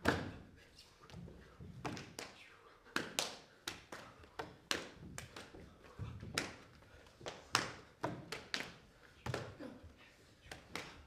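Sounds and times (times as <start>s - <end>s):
feet and hands slapping stage: 0.0s - 11.0s.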